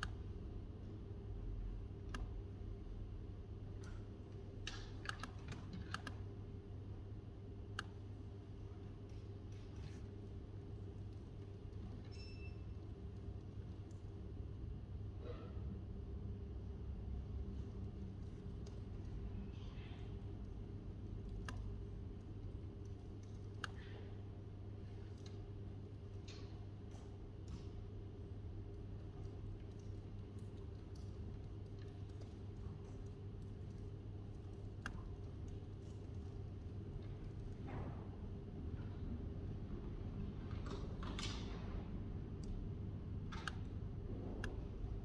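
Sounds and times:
low room hum: 0.0s - 45.0s.

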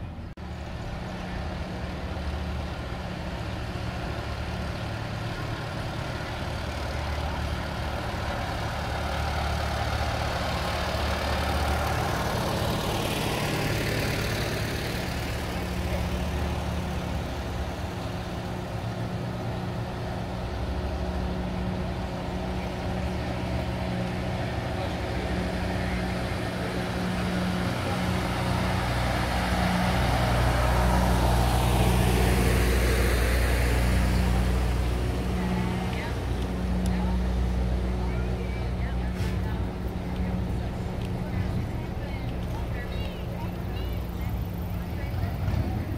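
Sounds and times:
tractor engines driving past: 0.0s - 45.9s.

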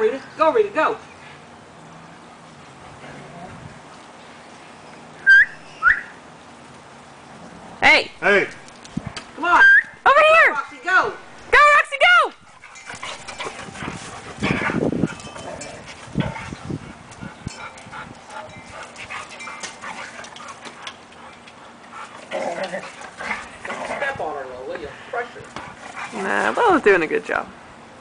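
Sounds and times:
dogs scuffling on grass: 10.6s - 27.4s
dog vocal noises: 12.5s - 24.3s.

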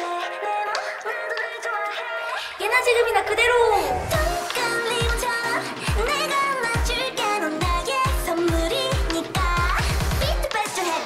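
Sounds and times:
pop song with woman singing: 0.0s - 11.0s.

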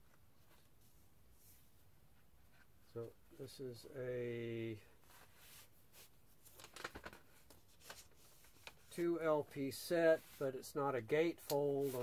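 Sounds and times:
cardboard and paper rustling: 5.1s - 9.0s, 11.4s - 12.0s.

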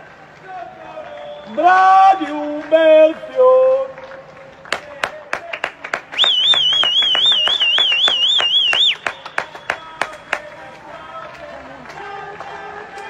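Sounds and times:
people clapping: 0.0s - 13.0s
loud high warbling whistle: 1.1s - 1.8s, 6.2s - 10.0s.

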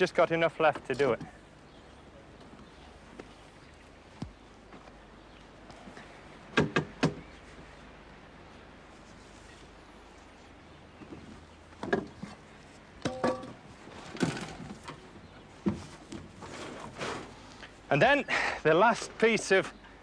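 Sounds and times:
metal wheelbarrow knocking: 13.0s - 13.6s
wheelbarrow clanking and scraping: 13.0s - 15.0s, 15.7s - 17.6s.

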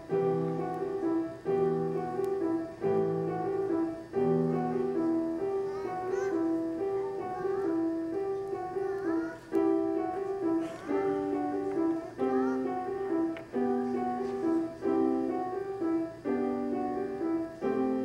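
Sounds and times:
gentle piano broken chords: 0.0s - 18.0s.

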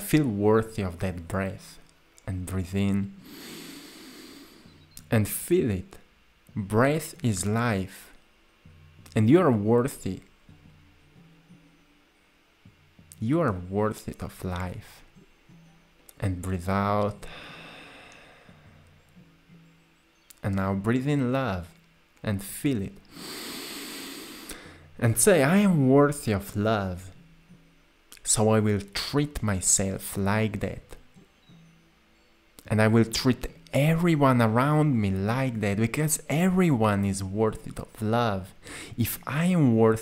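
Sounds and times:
person inhaling deeply: 3.2s - 4.7s, 17.3s - 18.8s, 23.1s - 24.9s, 38.6s - 39.0s
slow breath in: 3.2s - 4.8s, 17.3s - 18.8s, 23.1s - 24.9s, 38.6s - 38.9s.

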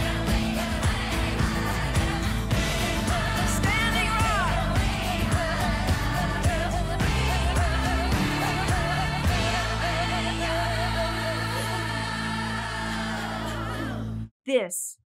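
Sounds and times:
pop song with vibrato singing: 0.0s - 14.3s.

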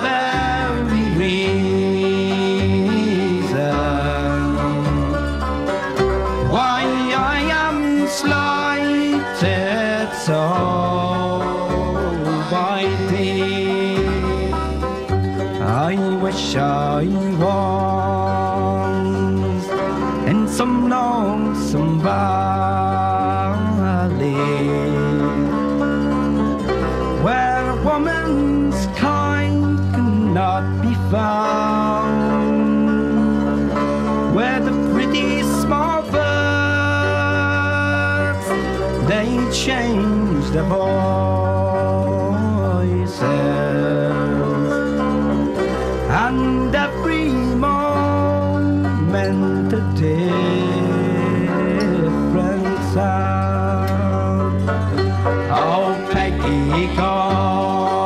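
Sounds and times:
folk song singing: 0.0s - 58.0s
instrumental accompaniment with bass: 0.0s - 58.0s.

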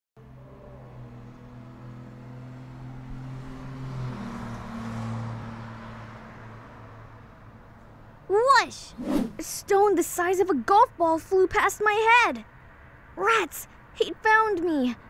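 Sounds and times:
vehicle engine hum: 0.2s - 8.2s
road noise: 0.2s - 15.0s.

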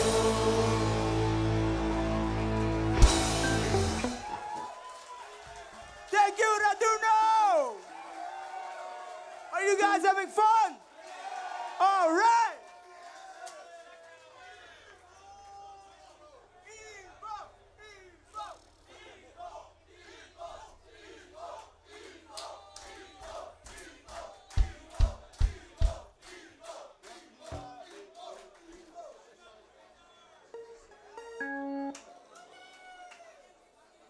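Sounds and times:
bass or guitar notes: 0.0s - 4.3s
crowd chanting and shouting: 0.0s - 4.7s, 14.6s - 32.3s
rhythmic clapping: 22.0s - 28.9s
heavy kick drum thumps: 24.6s - 26.0s.

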